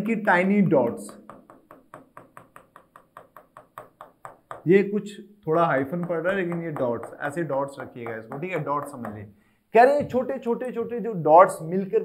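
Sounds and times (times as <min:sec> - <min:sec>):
pen tapping on touchscreen: 0:00.0 - 0:04.7, 0:05.8 - 0:09.3.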